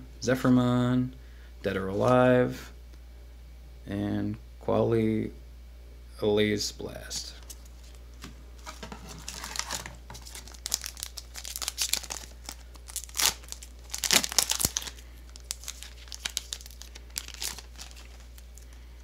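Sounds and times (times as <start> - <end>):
foil pack crinkling: 8.6 - 19.0.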